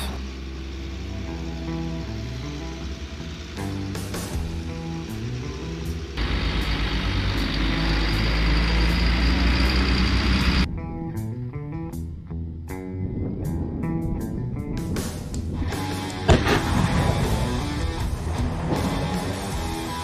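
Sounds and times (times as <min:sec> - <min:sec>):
truck engine and tyre noise: 0:00.0 - 0:10.8, 0:13.1 - 0:20.0
guitar and bass music: 0:00.0 - 0:20.0.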